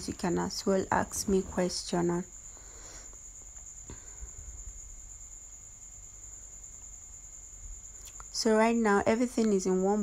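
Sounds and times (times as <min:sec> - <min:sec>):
faint click: 0:08.0 - 0:08.3.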